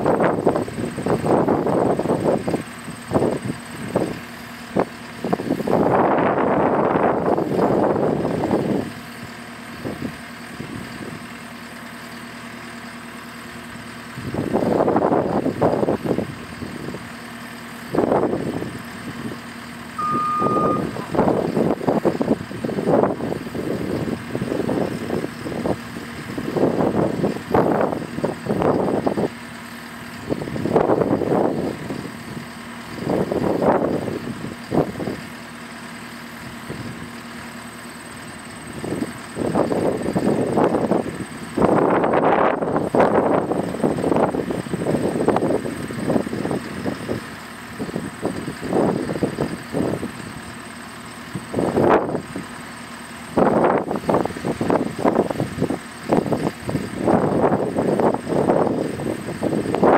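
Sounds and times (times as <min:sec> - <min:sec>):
skid steer idling: 0:00.0 - 0:59.9
short electronic beep: 0:20.0 - 0:21.5.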